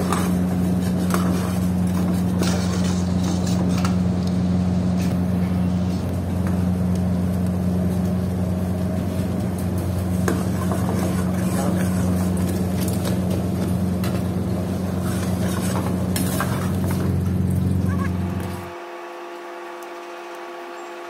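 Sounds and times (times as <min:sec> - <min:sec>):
kitchen machinery hum: 0:00.0 - 0:21.0.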